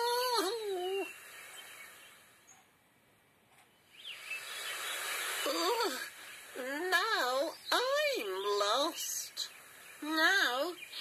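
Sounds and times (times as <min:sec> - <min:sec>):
high wavering whimper: 0:00.0 - 0:01.2
faint hiss: 0:00.0 - 0:11.0.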